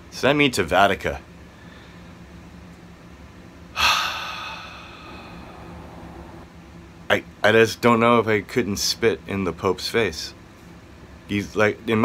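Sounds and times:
faint low hum: 0.0s - 10.4s
man sighing: 3.8s - 6.4s.

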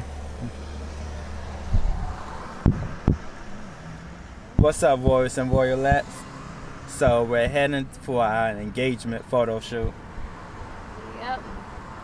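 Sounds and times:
car cabin hum: 0.0s - 3.7s, 4.4s - 6.1s
sharp knocks: 2.6s - 3.3s.

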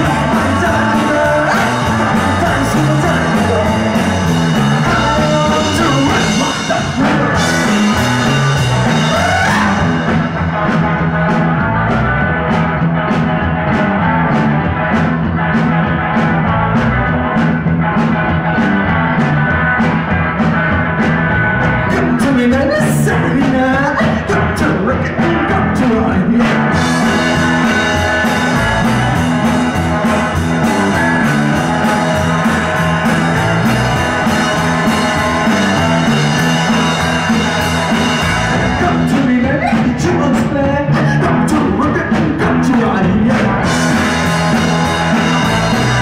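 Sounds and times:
person singing: 0.0s - 10.2s, 21.9s - 27.8s, 34.8s - 44.2s
steady drumbeat: 0.0s - 46.0s
walking bass line: 0.0s - 46.0s.

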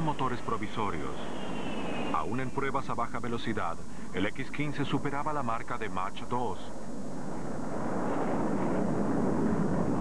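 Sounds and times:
jet engines in flight: 0.0s - 10.0s.

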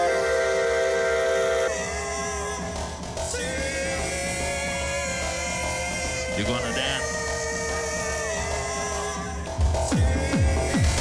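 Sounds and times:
looped beatbox vocal chord: 1.6s - 11.0s.

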